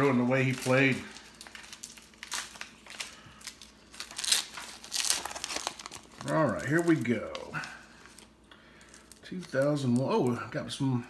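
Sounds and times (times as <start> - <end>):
foil wrapper tearing and crinkling: 0.0 - 10.4.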